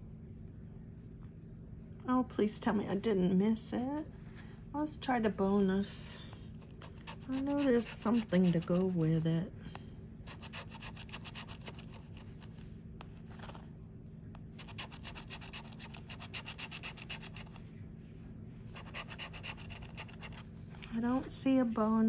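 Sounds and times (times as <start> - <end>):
scraping lottery ticket: 6.6 - 8.9, 10.3 - 12.6, 14.5 - 17.6, 18.8 - 20.5.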